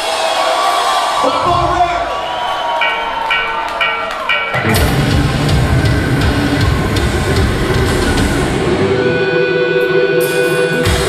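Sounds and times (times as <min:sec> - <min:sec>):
metal band playing live: 0:02.8 - 0:11.0
drum hits: 0:02.9 - 0:08.5.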